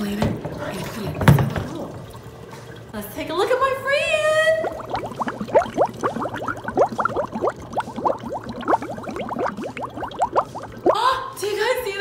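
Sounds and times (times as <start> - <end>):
dry ice bubbling in water: 0.6 - 11.4.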